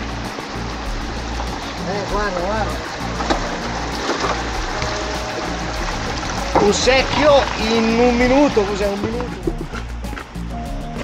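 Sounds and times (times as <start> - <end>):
background music with low tones: 0.0 - 11.0
stream water rushing: 0.0 - 11.0.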